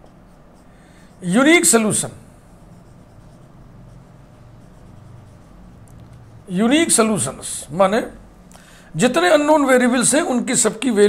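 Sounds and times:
marker pen writing on whiteboard: 0.0 - 8.0.

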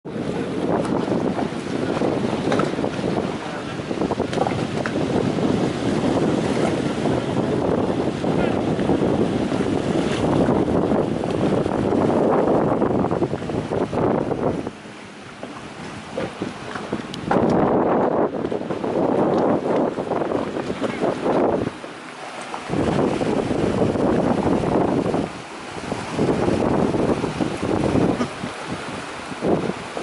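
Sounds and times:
wind on microphone: 0.0 - 30.0
small boat motor running: 0.1 - 30.0.

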